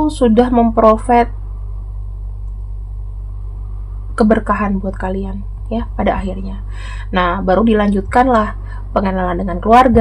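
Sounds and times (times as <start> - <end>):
speech: 0.0 - 1.3, 4.2 - 10.0
low background hum: 0.0 - 10.0.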